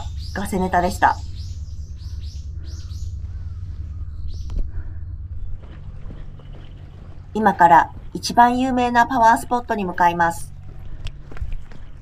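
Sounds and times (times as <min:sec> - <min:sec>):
small bird chirping: 0:00.0 - 0:07.4
steady low rumble: 0:00.0 - 0:12.0.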